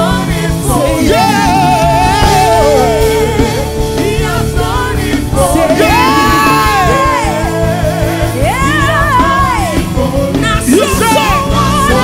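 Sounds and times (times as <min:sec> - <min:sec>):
gospel singers with band: 0:00.0 - 0:12.0.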